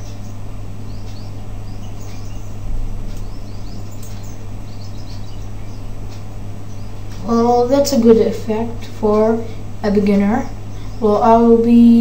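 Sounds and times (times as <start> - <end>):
faint high chirps: 0.0 - 7.2
electrical hum and hiss: 0.0 - 12.0.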